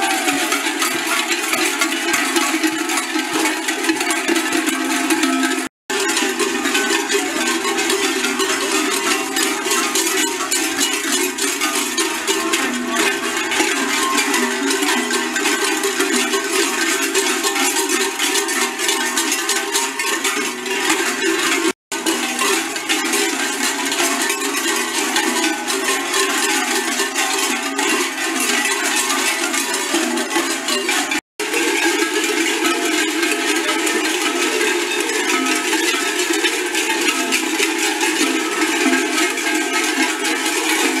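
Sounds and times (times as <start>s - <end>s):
large metal bells clanging: 0.0s - 41.0s.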